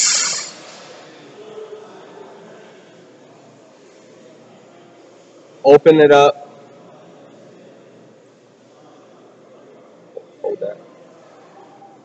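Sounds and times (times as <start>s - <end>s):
short sharp hiss: 0.0s - 1.1s.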